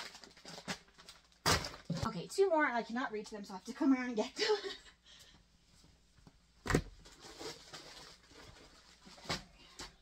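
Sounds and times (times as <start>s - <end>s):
rustling and handling noise: 0.0s - 2.5s, 5.6s - 10.0s.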